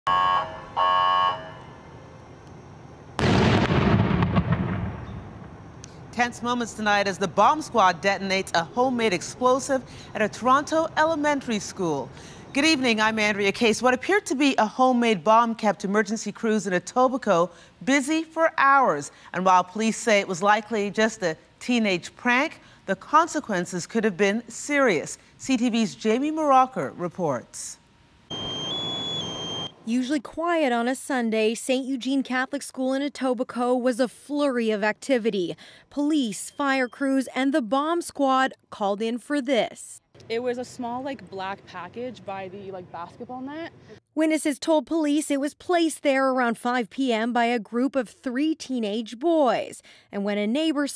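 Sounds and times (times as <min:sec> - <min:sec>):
horn-like warning tones: 0:00.0 - 0:02.0, 0:28.3 - 0:29.8
background hiss: 0:00.1 - 0:32.2
explosion blast with crackling: 0:03.2 - 0:05.7.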